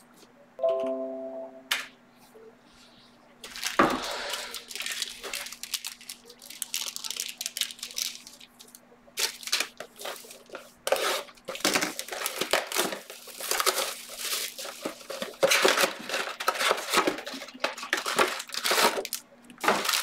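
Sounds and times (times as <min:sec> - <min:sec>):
plastic wrap tearing and crinkling: 0:03.4 - 0:20.0.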